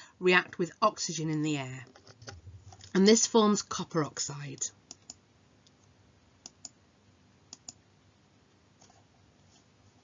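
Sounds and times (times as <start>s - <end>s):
computer mouse clicks: 4.9s - 6.8s, 7.5s - 7.8s.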